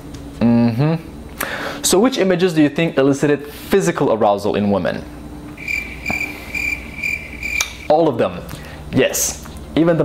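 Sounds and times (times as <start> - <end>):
crickets chirping: 5.6 - 8.0.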